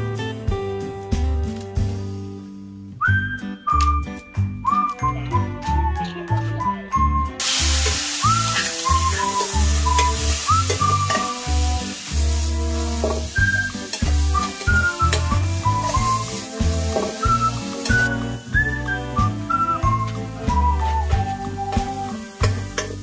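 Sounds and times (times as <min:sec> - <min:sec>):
background music with whistled melody: 0:02.9 - 0:12.0, 0:12.9 - 0:23.0
food sizzling in hot oil: 0:07.4 - 0:23.0.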